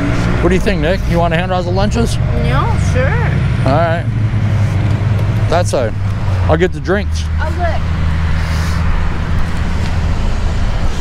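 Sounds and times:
car engine idling: 0:00.0 - 0:10.7
road traffic noise: 0:00.0 - 0:11.0.

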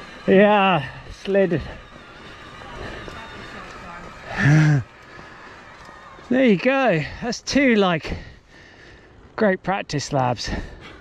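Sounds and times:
wind and tyre noise: 0:00.0 - 0:11.0.

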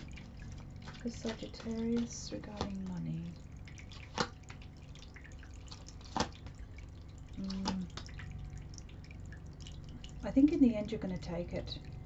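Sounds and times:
fountain water trickling: 0:00.0 - 0:12.0.

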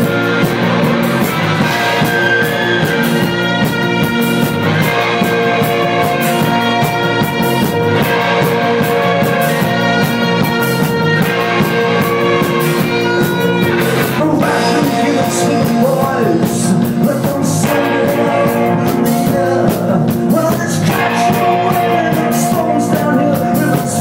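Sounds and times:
rock band with electric guitars: 0:00.0 - 0:24.0
man singing: 0:13.9 - 0:24.0.

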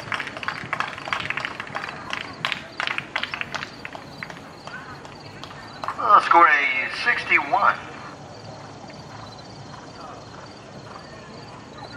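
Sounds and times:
outdoor background noise: 0:00.0 - 0:11.9.

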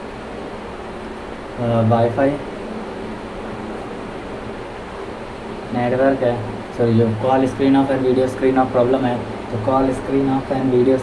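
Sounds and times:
background hiss: 0:00.0 - 0:11.0
faint low hum: 0:00.0 - 0:11.0.

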